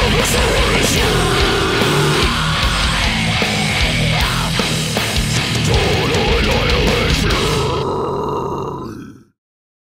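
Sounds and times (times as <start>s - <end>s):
drums and cymbals: 0.0s - 7.8s
down-tuned electric guitars: 0.0s - 9.0s
guttural vocal: 0.3s - 2.7s, 5.7s - 9.4s.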